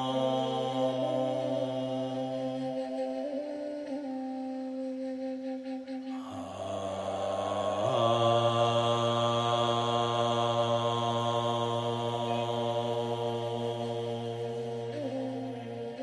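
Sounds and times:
man chanting a long held note: 0.0 - 4.3, 6.1 - 16.0.

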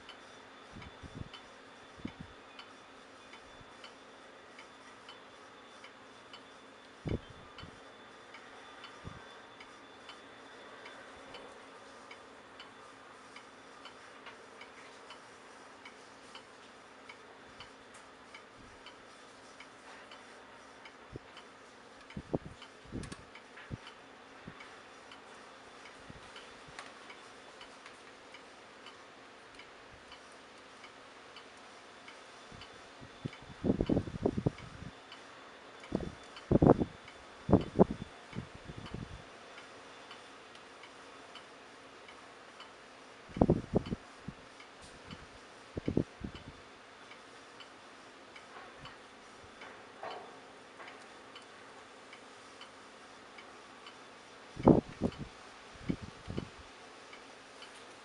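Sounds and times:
faint regular ticking: 0.0 - 58.0
low steady background: 0.0 - 58.0.

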